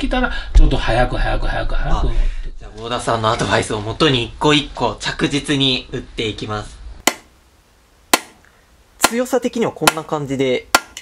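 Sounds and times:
hammer tapping steel punch: 0:10.7 - 0:11.0.

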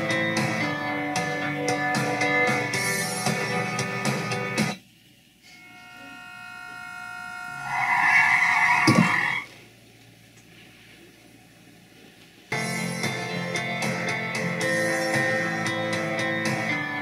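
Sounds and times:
horn-like blare: 0:05.4 - 0:09.4
tyre screech: 0:05.5 - 0:09.5.

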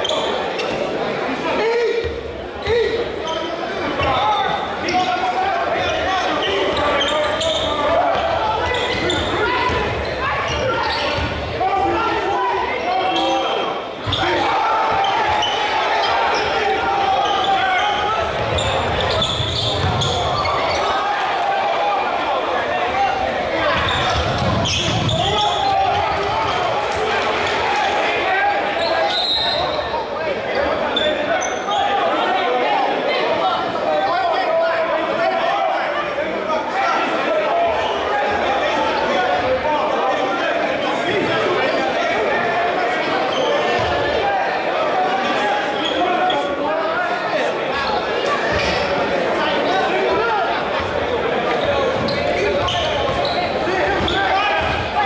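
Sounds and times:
spectators talking and calling out: 0:00.0 - 0:55.0.

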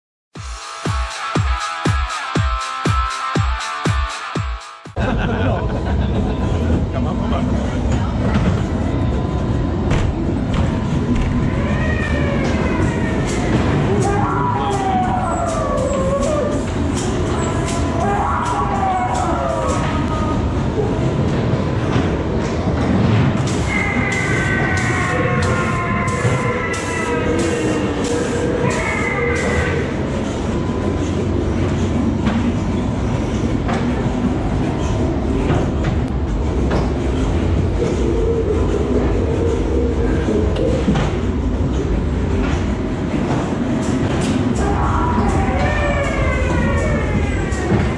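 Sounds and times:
ride car rumbling on track: 0:05.0 - 0:47.9.

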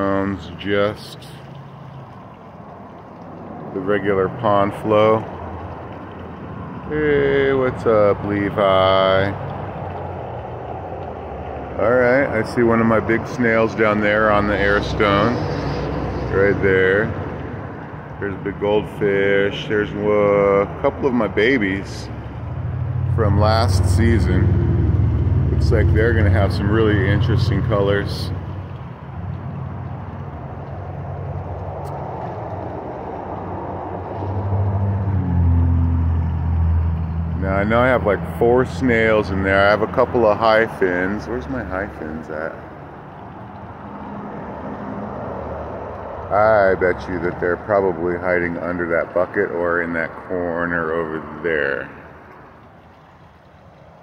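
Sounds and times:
low engine hum: 0:00.0 - 0:54.0
pond water rushing: 0:00.0 - 0:54.0.

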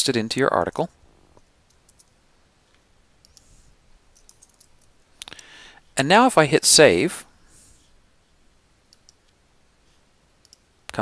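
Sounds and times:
faint computer clicks: 0:01.4 - 0:03.5, 0:04.1 - 0:05.4, 0:08.9 - 0:09.4, 0:10.4 - 0:11.0.

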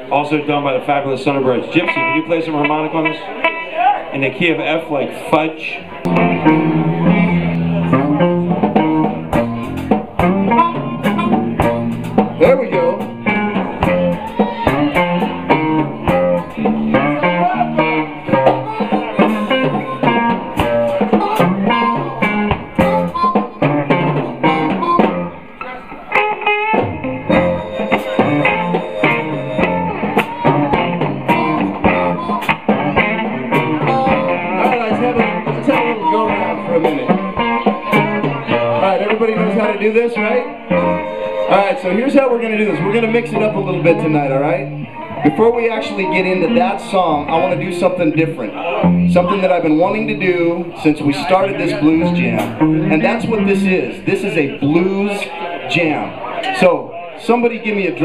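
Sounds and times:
electric blues band: 0:00.8 - 0:58.0
harmonica: 0:06.1 - 0:25.4, 0:27.2 - 0:39.6, 0:40.7 - 0:42.8.

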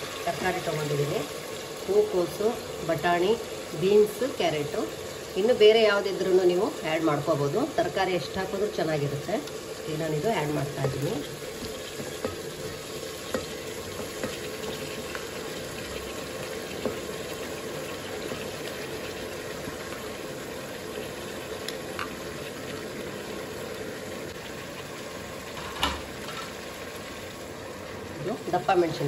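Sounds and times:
tomato sizzling in oil: 0:00.0 - 0:29.0.

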